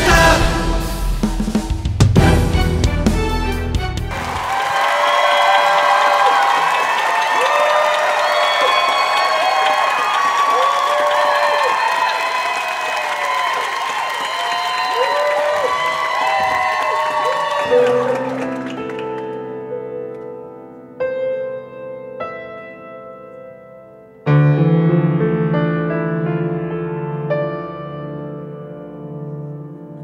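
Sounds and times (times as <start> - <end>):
theme music with drums: 0.0 - 4.7
audience applauding and cheering: 3.5 - 19.5.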